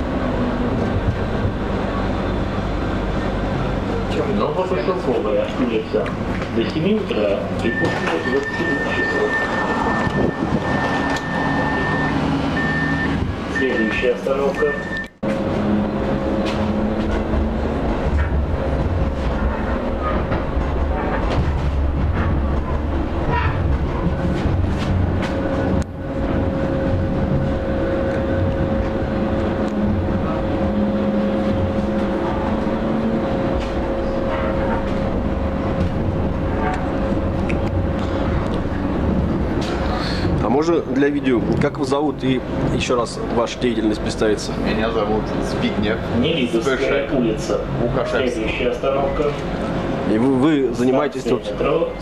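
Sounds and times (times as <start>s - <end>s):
tram wheels rumbling on rails: 0.0s - 52.0s
high whine: 6.6s - 20.0s.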